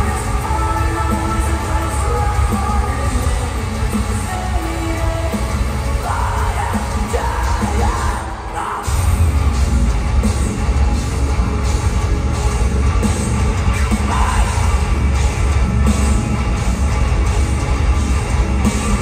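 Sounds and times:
live metal band playing: 0.0s - 19.0s.

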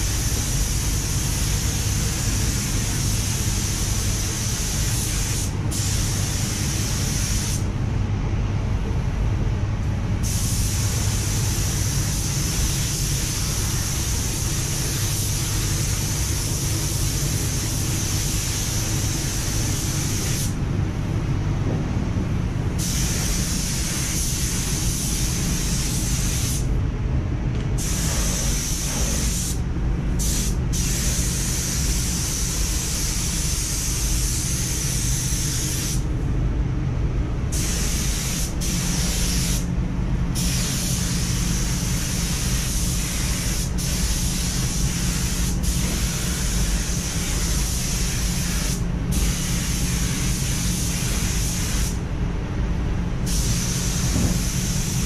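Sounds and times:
spray gun spraying paint: 0.0s - 7.7s, 10.2s - 20.6s, 22.8s - 26.7s, 27.8s - 29.6s, 30.2s - 36.0s, 37.5s - 39.7s, 40.4s - 52.0s, 53.2s - 55.0s
steady low hum: 0.0s - 55.0s.

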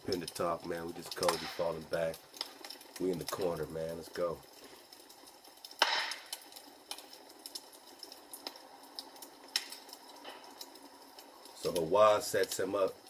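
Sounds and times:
wood fire crackling and popping: 0.0s - 13.0s.

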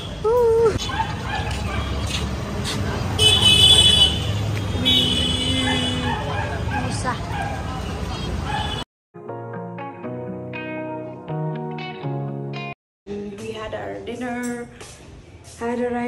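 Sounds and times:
street and crowd noise: 0.0s - 8.8s, 13.1s - 16.0s.

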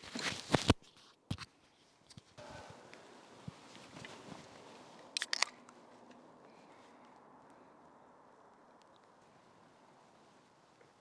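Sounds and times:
beer can cracked open: 5.2s - 5.6s.

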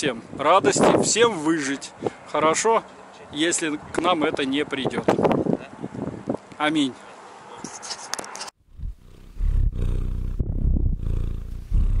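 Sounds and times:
cat purring: 8.7s - 12.0s.

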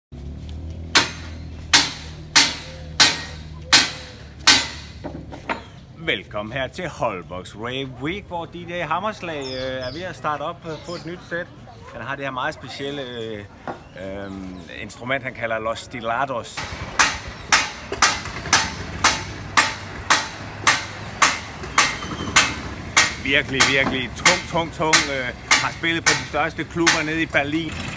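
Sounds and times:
hammer striking: 0.9s - 5.7s, 16.6s - 27.6s.

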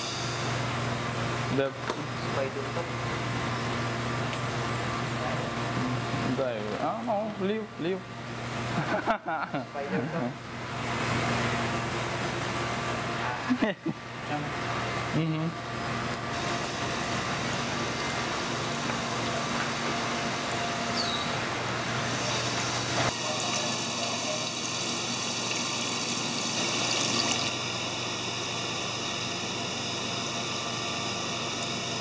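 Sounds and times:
circulating water rushing: 16.4s - 27.6s.

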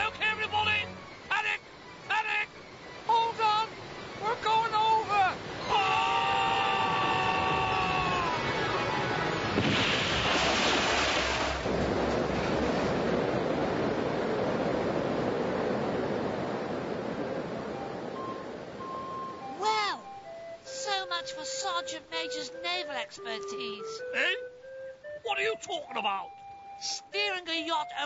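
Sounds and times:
churning water rushing: 0.0s - 21.4s
loud splash: 8.0s - 14.1s.

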